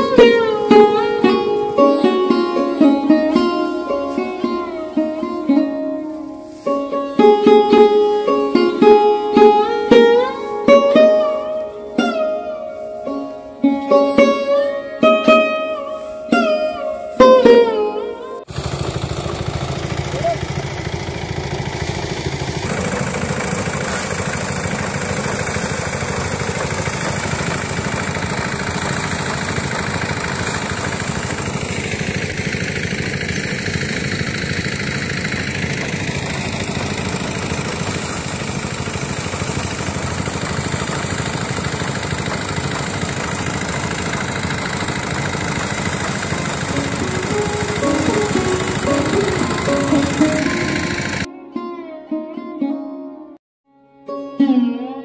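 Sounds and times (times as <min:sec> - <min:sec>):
threshing machine engine running: 0:18.5 - 0:51.3.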